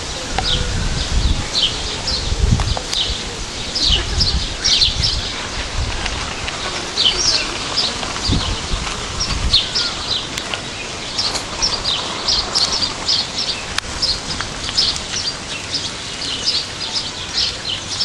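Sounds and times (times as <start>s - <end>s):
small birds chirping: 0.3s - 18.0s.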